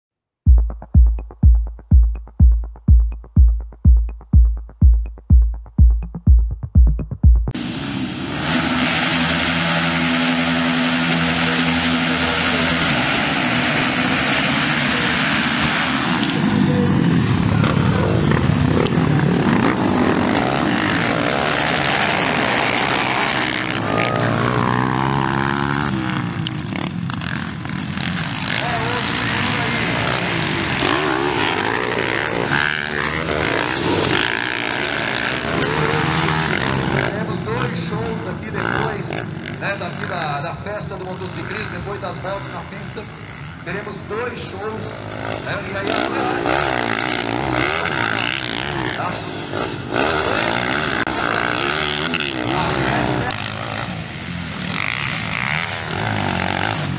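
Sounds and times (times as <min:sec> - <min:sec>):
electronic music beat: 0:00.5 - 0:07.6
dirt bike engines revving: 0:07.5 - 0:56.9.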